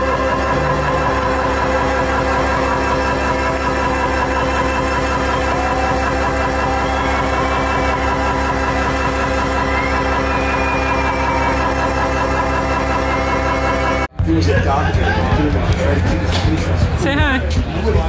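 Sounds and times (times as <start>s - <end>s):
synth-pop music: 0.0s - 18.0s.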